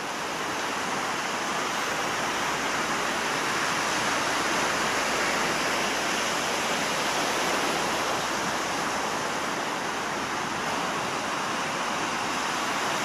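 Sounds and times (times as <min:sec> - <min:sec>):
waves washing onto stony beach: 0:00.0 - 0:13.0.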